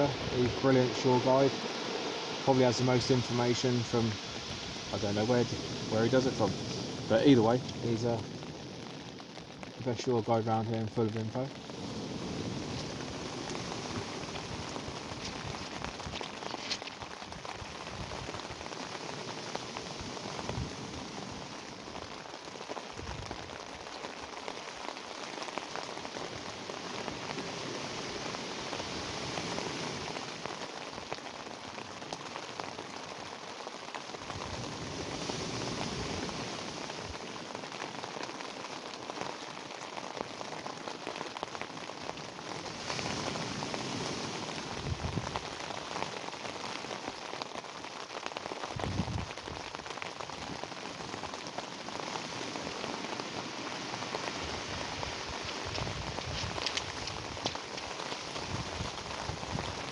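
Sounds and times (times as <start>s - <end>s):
rain pattering on fabric: 0.0s - 59.9s.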